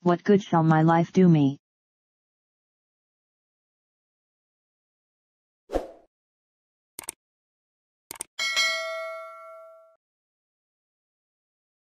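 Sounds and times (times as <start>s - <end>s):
notification bell ding: 8.4s - 10.0s.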